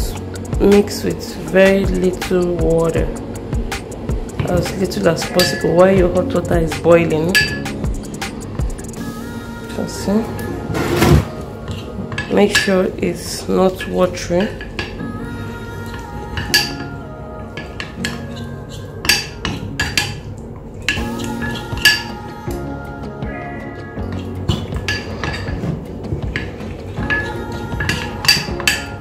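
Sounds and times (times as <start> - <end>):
background music: 0.0 - 29.0.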